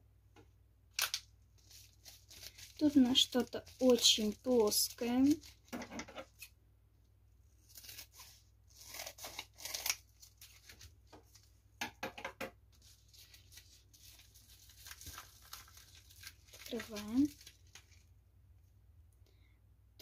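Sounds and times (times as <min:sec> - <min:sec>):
plastic mailer crinkling and tearing: 0:00.9 - 0:05.7, 0:07.6 - 0:11.5, 0:12.8 - 0:18.1.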